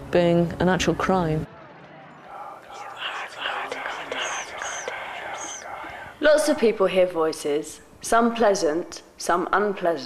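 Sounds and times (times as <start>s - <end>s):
whispering voices: 2.0s - 7.0s.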